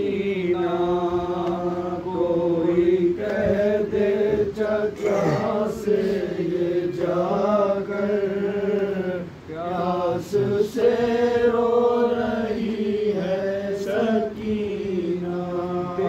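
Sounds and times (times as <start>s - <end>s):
men chanting a lament: 0.0s - 16.0s.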